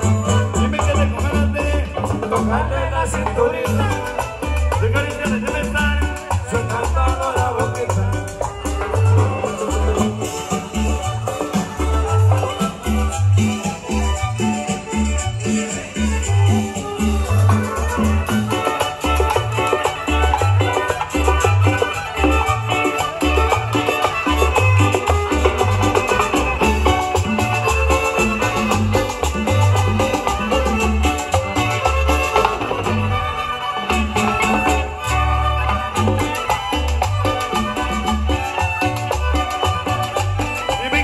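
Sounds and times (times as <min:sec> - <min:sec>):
latin dance band playing live: 0:00.0 - 0:41.0.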